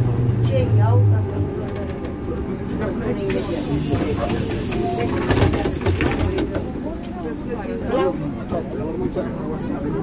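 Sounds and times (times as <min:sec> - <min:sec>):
compressed air hissing: 0:03.3 - 0:05.1.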